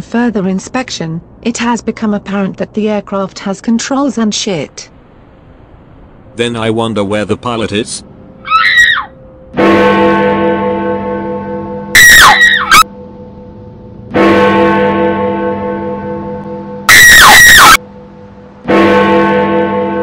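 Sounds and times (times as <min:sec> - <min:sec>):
short scream: 0:08.4 - 0:09.1, 0:12.0 - 0:12.9
faint steady hum: 0:17.8 - 0:18.7.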